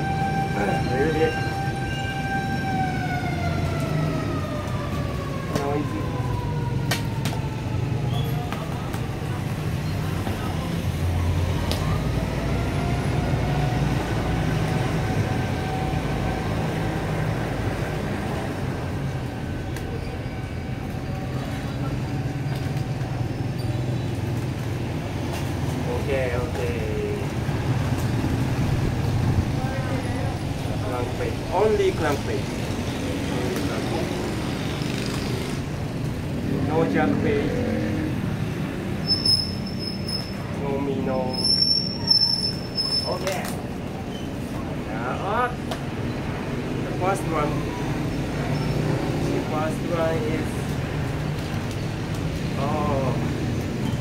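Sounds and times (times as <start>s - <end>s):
road traffic rumble: 0.0s - 54.0s.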